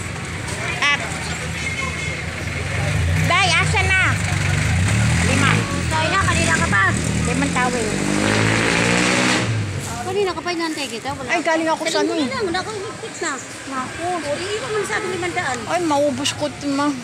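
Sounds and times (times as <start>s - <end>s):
vehicle engine running: 0.0s - 16.3s
people's voices: 0.0s - 17.0s.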